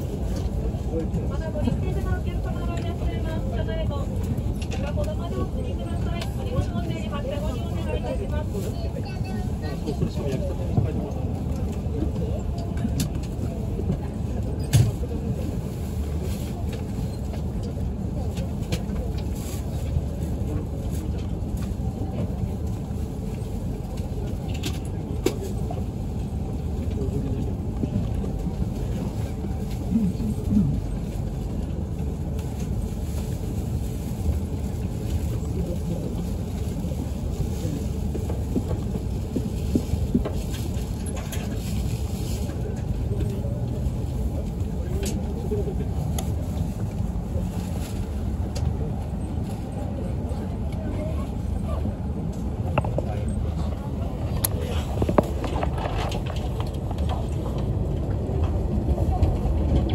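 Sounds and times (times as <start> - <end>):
train cabin rumble: 0.0 - 59.9.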